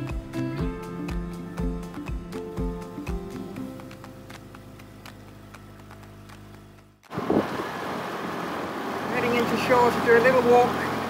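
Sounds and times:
soft music with ticking beat: 0.0 - 7.0
outboard motor running: 4.2 - 11.0
wind and water rushing: 7.1 - 7.8.

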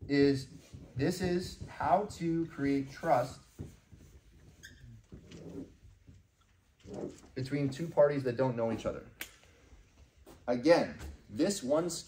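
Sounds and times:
marker writing on whiteboard: 0.0 - 8.0.

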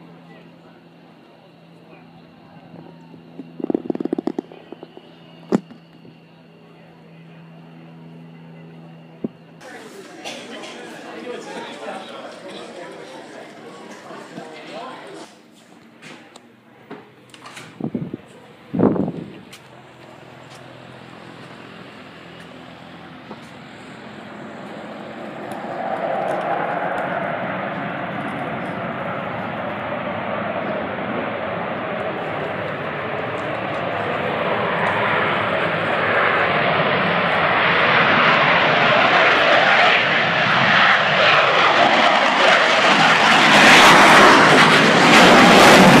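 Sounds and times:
propeller airplane engines running: 0.0 - 46.0.

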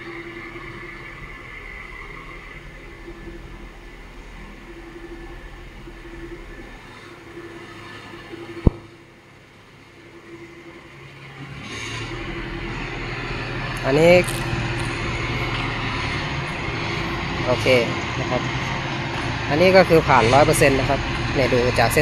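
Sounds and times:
car engine running at low speed: 0.0 - 22.0.

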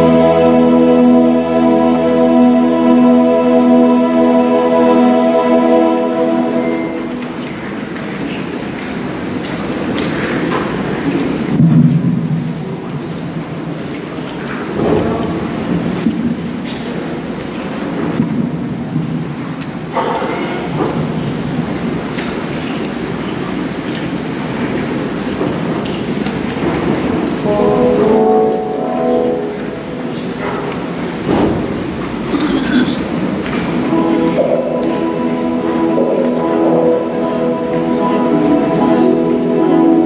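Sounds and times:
choir singing: 0.0 - 7.6, 33.8 - 40.0
keyboard accompaniment: 0.0 - 8.3, 26.7 - 40.0.

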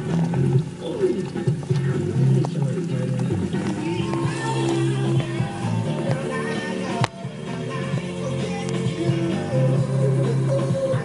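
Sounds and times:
music from a radio: 0.0 - 11.0.

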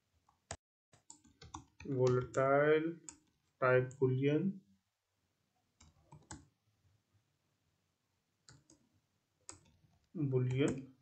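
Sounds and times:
computer keyboard keystrokes: 1.0 - 2.4, 5.8 - 6.5.

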